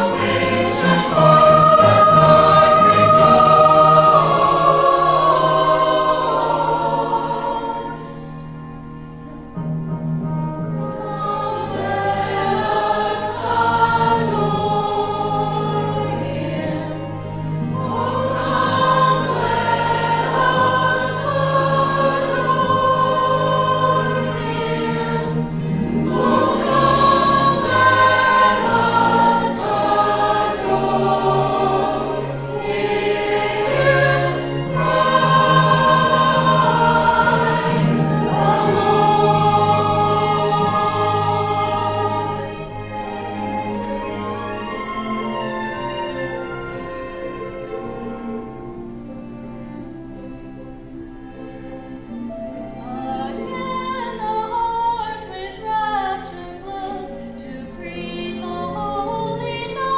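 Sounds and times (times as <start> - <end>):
choir singing sustained notes: 0.0 - 59.9.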